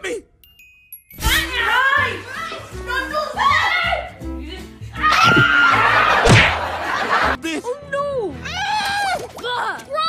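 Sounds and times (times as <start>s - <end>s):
background music with low notes: 1.2s - 10.0s.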